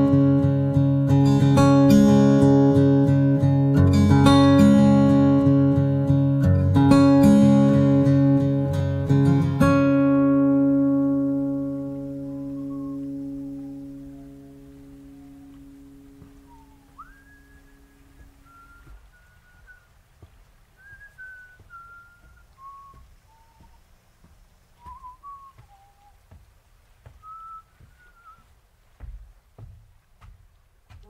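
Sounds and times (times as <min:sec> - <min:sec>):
acoustic guitar chord: 0:00.0 - 0:19.0
person whistling melody: 0:11.6 - 0:19.9, 0:20.8 - 0:23.8, 0:24.8 - 0:26.2, 0:27.2 - 0:28.5.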